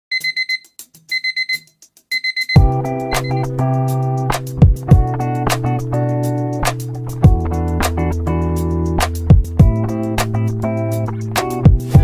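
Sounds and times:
digital alarm clock beeping: 0:00.1 - 0:03.5
music with bass and drums: 0:02.5 - 0:12.0.

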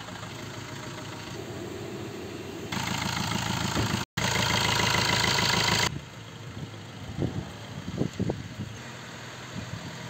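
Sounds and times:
car engine running at low speed: 0:00.0 - 0:10.0.

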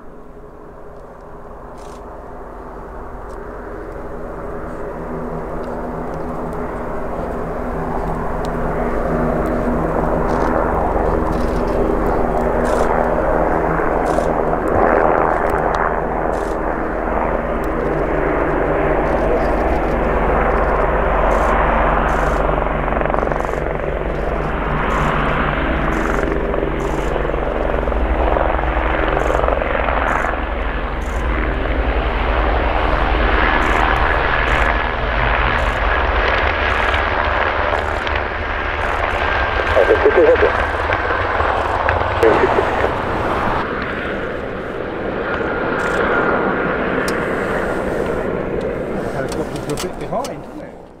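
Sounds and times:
aircraft engines droning: 0:00.0 - 0:51.0
helicopter flying: 0:00.0 - 0:51.0.

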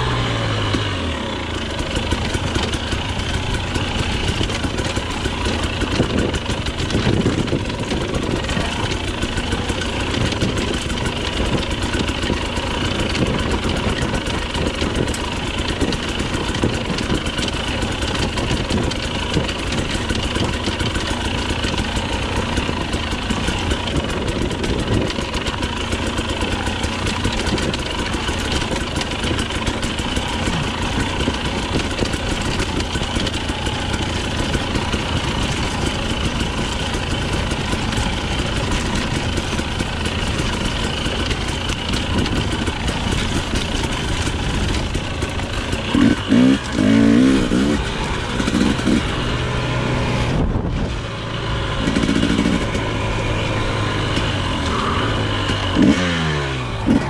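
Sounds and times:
knocks and rattles from bike: 0:00.0 - 0:57.0
motorbike engine running: 0:00.0 - 0:57.0.

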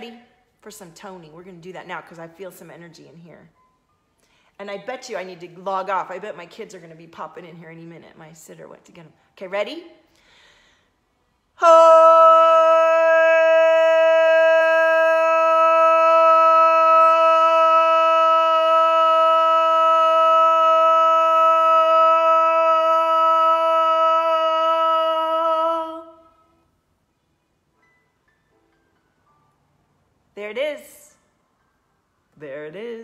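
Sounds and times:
woman holding vocal tone: 0:11.6 - 0:26.4.

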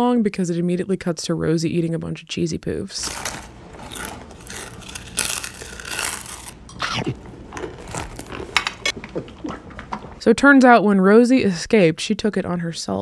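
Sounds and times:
crunching cheese puffs: 0:03.0 - 0:08.9
snack bag rustling: 0:03.0 - 0:09.5.

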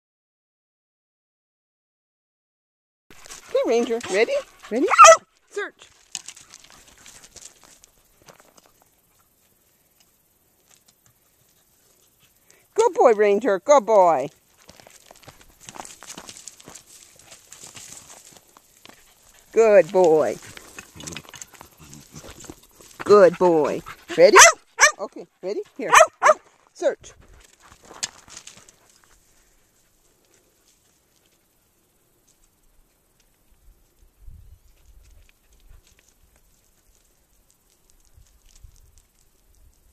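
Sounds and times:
footsteps on gravel: 0:03.1 - 0:09.0, 0:14.3 - 0:24.9, 0:25.9 - 0:29.6
dry grass crackling underfoot: 0:03.1 - 0:13.0, 0:14.2 - 0:25.0, 0:25.8 - 0:39.9
faint scattered ticks: 0:03.2 - 0:13.5, 0:14.2 - 0:39.9.

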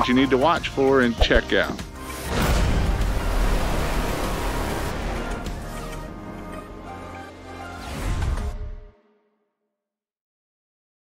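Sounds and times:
explosion sound effect: 0:02.1 - 0:06.1.

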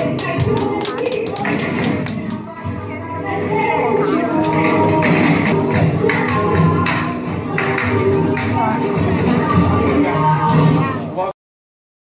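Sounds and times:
sharp percussive taps and clicks: 0:00.0 - 0:02.4
flamenco dance music: 0:00.0 - 0:10.8.

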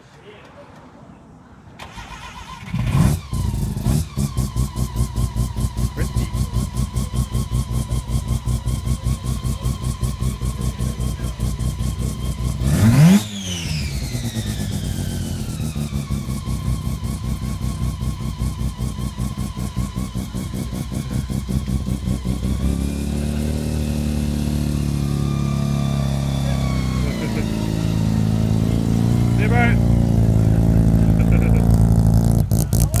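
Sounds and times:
engine revving: 0:01.8 - 0:33.0
rotary engine starting and idling: 0:01.8 - 0:33.0.

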